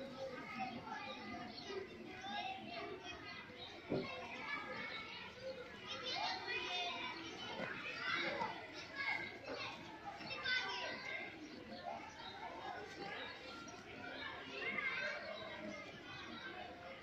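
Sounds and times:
children talking and calling out: 0.0 - 17.0.

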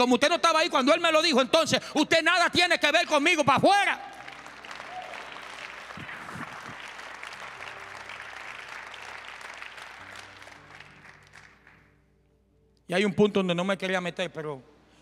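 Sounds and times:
congregation applauding: 3.7 - 11.9.

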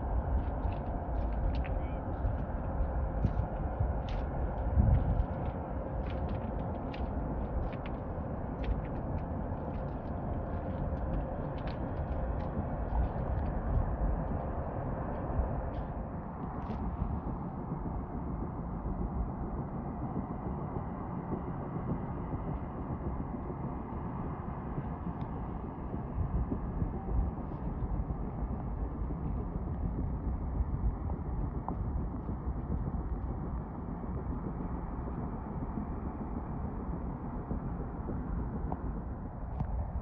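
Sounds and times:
faint steady hum: 0.0 - 40.0
wind rumbling on microphone: 0.0 - 40.0.

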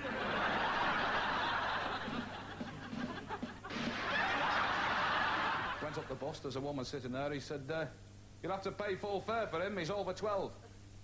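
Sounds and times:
audience laughing: 0.0 - 6.2
man speaking: 5.8 - 10.6.

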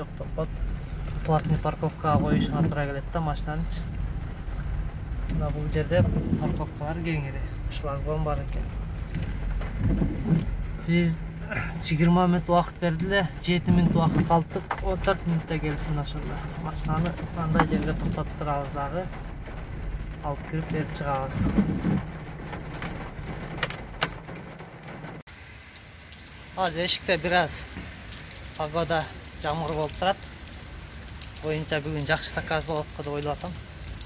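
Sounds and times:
man talking: 0.0 - 4.0, 5.2 - 8.9, 10.8 - 19.2, 20.2 - 22.0, 26.6 - 27.8, 28.5 - 30.2, 31.4 - 33.6
steady rain falling: 0.0 - 34.0.

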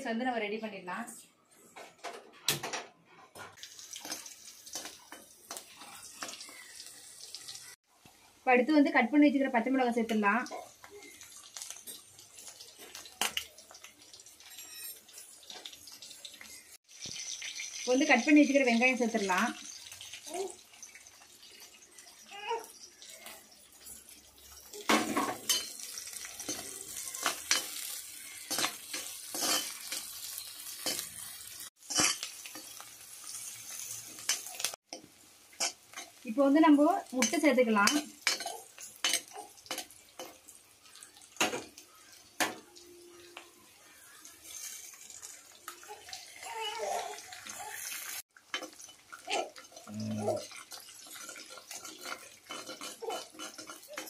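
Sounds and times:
vegetables sizzling in oil: 3.6 - 54.0
metal spatula scraping a pan: 14.4 - 15.6, 23.7 - 34.8, 44.4 - 45.6, 47.5 - 54.0.

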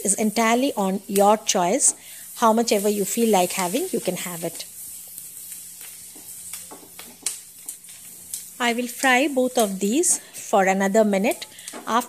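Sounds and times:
garlic sizzling in butter: 0.0 - 12.0
spatula scraping and tapping: 5.2 - 8.2.

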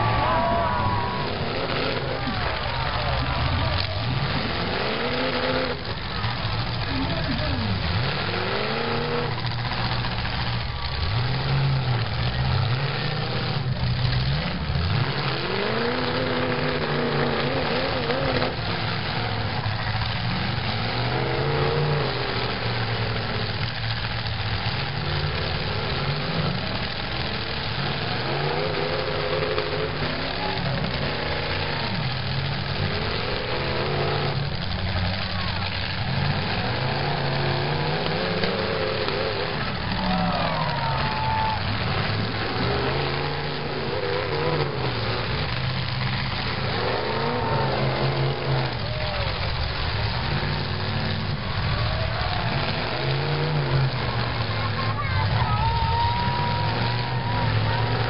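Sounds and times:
car engines revving: 0.0 - 58.0.

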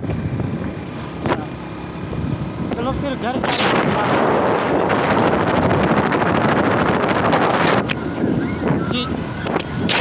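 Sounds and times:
motorcycle engine: 0.0 - 10.0
wind rushing over microphone: 0.0 - 10.0.

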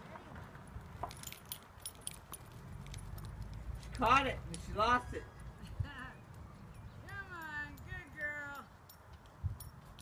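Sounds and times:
metallic jingling clinks: 1.0 - 3.4, 6.7 - 10.0.

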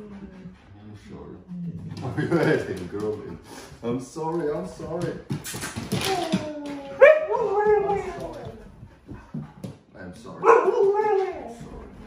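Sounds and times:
huskies whining: 5.9 - 9.3, 10.4 - 12.0
dog howling: 6.0 - 8.7, 10.4 - 11.9.

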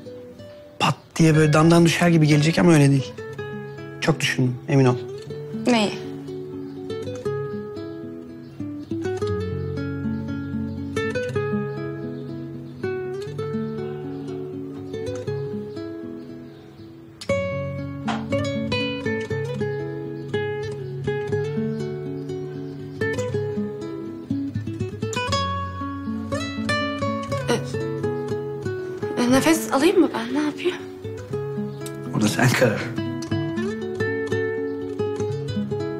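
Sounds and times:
gentle acoustic guitar piece: 0.0 - 35.9.

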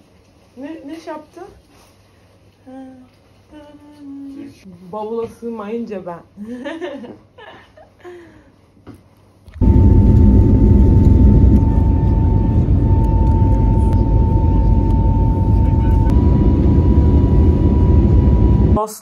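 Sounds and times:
faint steady whine: 9.5 - 18.8
airliner engines and airflow rumble: 9.6 - 18.8.

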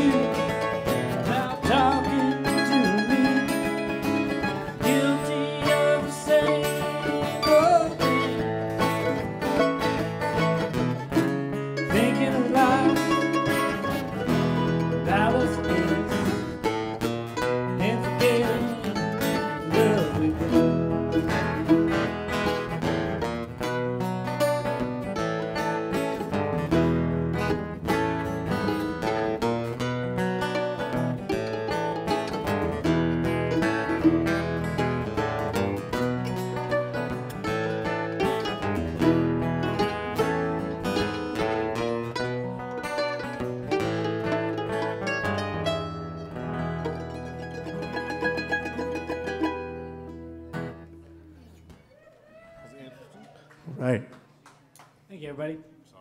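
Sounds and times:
acoustic guitars and mandolin playing: 0.0 - 51.9.

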